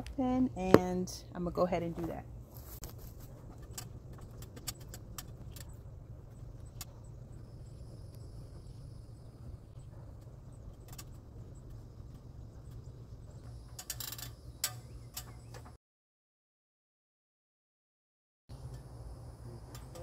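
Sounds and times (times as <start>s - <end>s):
steady low rumble: 0.0s - 13.8s
light clicks and clinks: 19.6s - 20.0s.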